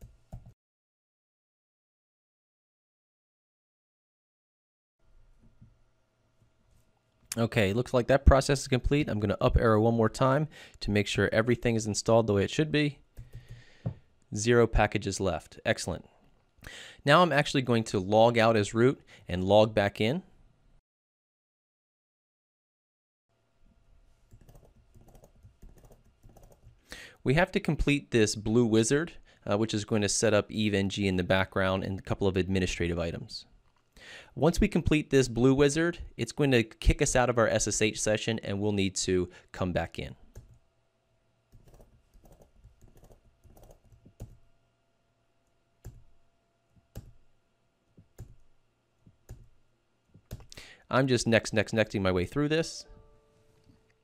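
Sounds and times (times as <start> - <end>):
computer keyboard clicking: 24.3 - 26.7, 41.5 - 44.4.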